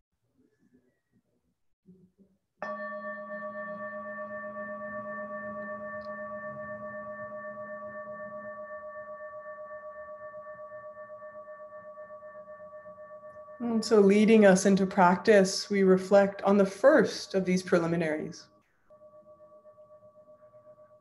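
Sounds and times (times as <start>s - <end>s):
singing bowl ringing: 2.6s - 15.4s, 17.2s - 21.0s.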